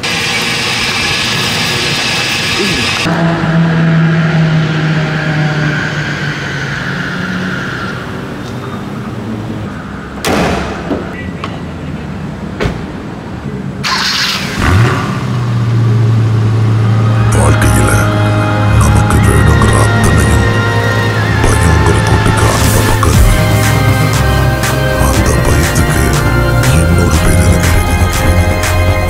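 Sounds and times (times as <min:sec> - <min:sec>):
car bonnet slammed shut: 0:10.2 - 0:11.0
car engine starting and idling: 0:11.1 - 0:29.0
background music: 0:16.3 - 0:29.0.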